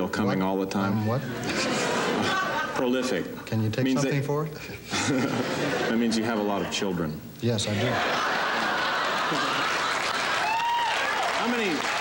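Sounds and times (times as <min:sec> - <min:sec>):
audience laughing: 0:01.2 - 0:03.3, 0:04.9 - 0:06.8, 0:07.7 - 0:10.6
studio audience applauding: 0:08.2 - 0:12.0.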